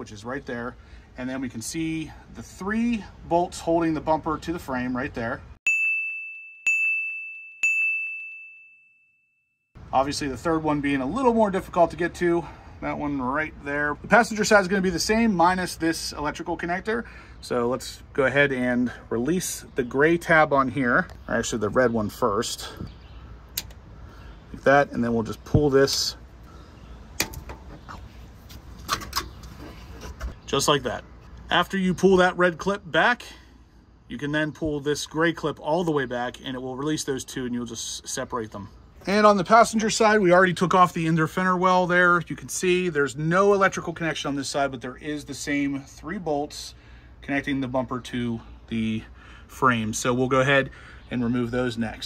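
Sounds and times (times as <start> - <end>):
high bell-like ding: 5.7 - 9.4.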